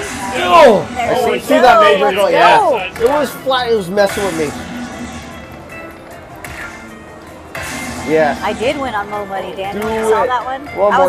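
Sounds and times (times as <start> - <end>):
slot machine music and effects: 0.0 - 11.0.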